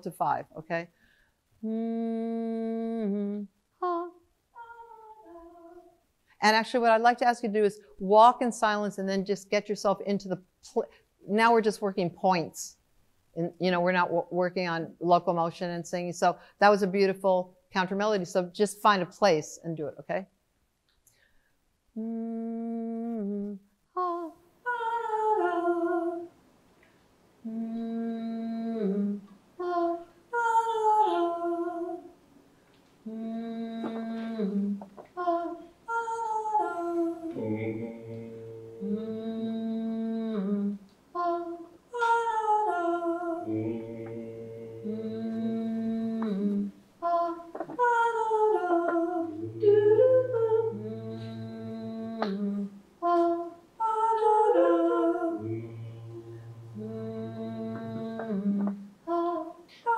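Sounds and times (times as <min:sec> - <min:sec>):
wordless layered vocal loops: 0:22.0 - 0:26.4, 0:33.0 - 0:59.9
man's low held drone: 0:55.4 - 0:58.6.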